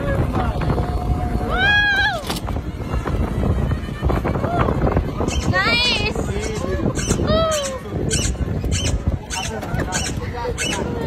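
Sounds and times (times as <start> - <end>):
low rumble of moving vehicle: 0.0 - 11.0.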